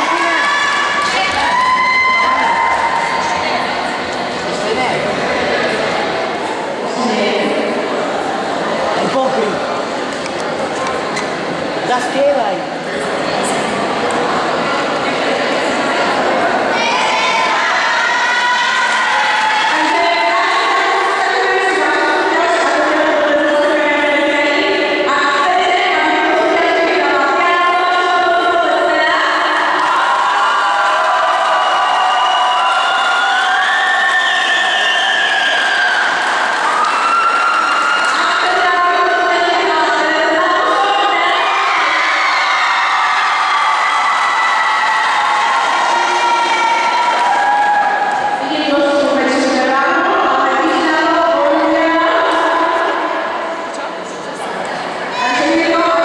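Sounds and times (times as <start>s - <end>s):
audience crowd noise: 0.0s - 56.0s.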